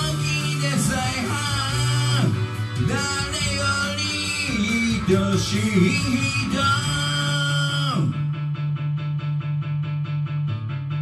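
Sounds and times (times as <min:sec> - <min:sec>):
guitar repeated pattern: 0:00.0 - 0:11.0.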